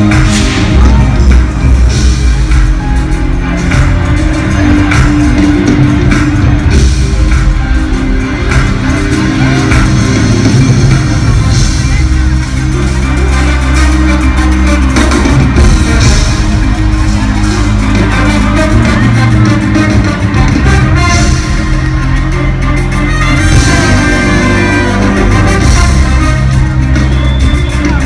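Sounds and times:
loud reggaeton band music: 0.0s - 28.0s.

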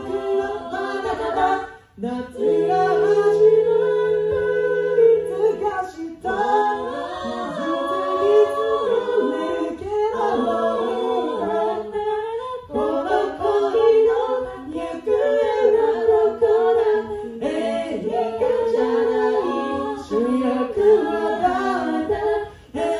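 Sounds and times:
a cappella group singing in harmony: 0.0s - 22.9s.

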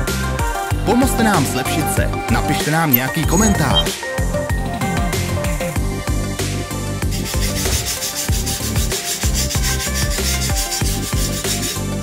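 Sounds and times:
electronic music with steady beat: 1.2s - 5.9s
wire brush scrubbing metal: 7.1s - 12.0s.

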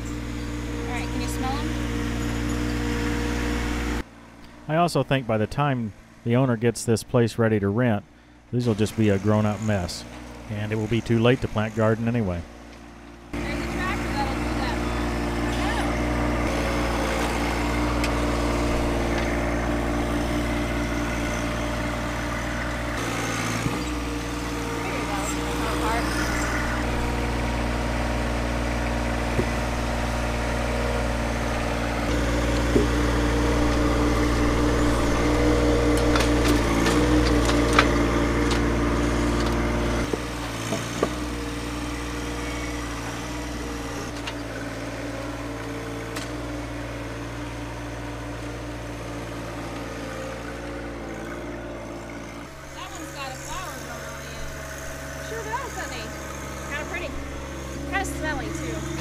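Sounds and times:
tractor diesel engine running: 0.0s - 59.0s.

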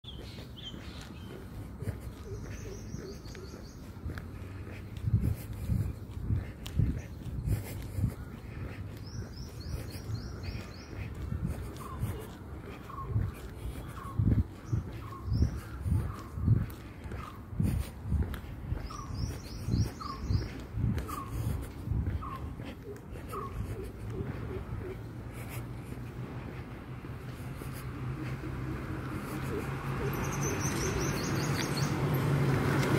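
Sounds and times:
soft bird calls: 0.0s - 32.9s
footsteps dull thuds: 0.1s - 28.7s
steady low rumble: 0.1s - 29.9s
scuffing noise: 0.1s - 31.8s.

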